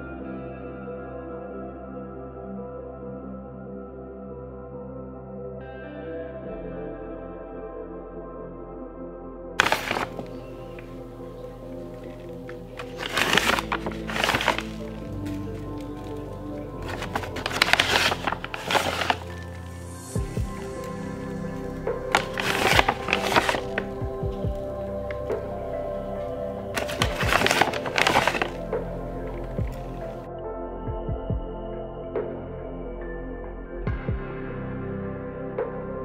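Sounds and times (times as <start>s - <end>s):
soft background music: 0.0s - 36.0s
plastic pouch rustling: 9.6s - 30.2s.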